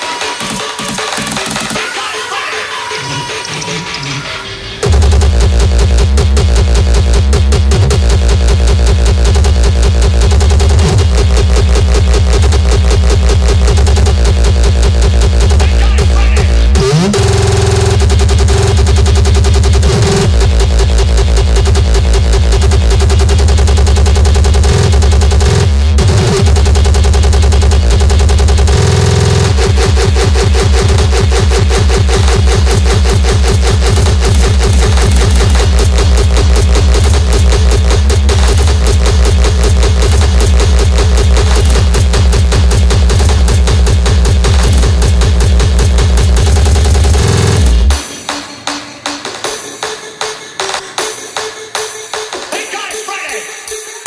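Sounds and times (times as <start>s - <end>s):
rapid kick drums: 0.0s - 1.8s, 4.8s - 53.5s
fast hardcore techno: 0.0s - 54.0s.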